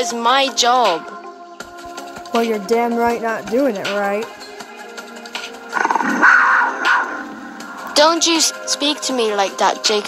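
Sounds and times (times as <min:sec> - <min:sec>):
quiet background music: 0:00.0 - 0:10.0
harsh animal snarl: 0:05.7 - 0:07.6.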